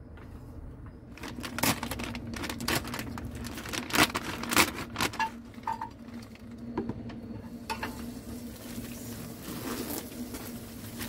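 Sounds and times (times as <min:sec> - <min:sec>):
food frying in a pan: 0:07.7 - 0:11.0.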